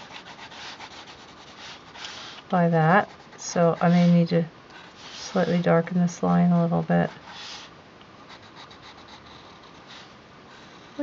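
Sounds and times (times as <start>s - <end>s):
pencil scratching on textured paper: 0.0s - 5.7s, 7.0s - 7.7s, 8.3s - 11.0s.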